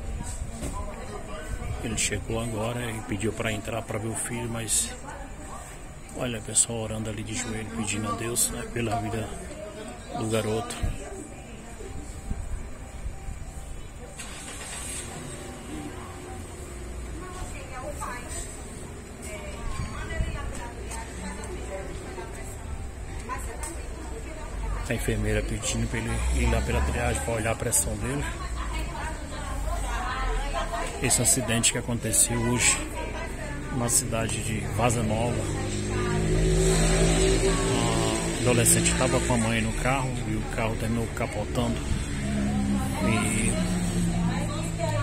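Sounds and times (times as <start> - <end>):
faint voices: 0.0 - 45.0
motor vehicle running: 34.4 - 45.0.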